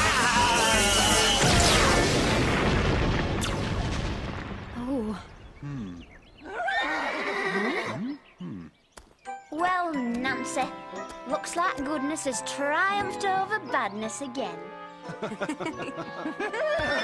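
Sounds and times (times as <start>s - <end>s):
magic blast: 0.6s - 5.0s
horse whinnying: 6.4s - 8.2s, 16.6s - 17.0s.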